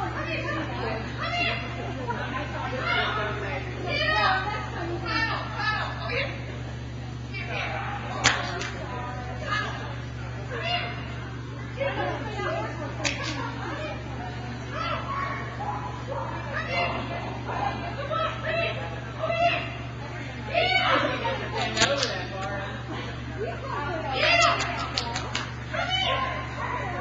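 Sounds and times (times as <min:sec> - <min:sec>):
people talking and calling: 0:00.0 - 0:27.0
steady low hum: 0:00.0 - 0:27.0.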